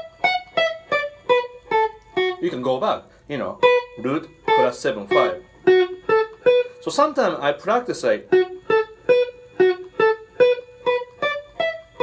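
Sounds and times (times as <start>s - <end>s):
electric guitar single picked notes: 0.0s - 12.0s.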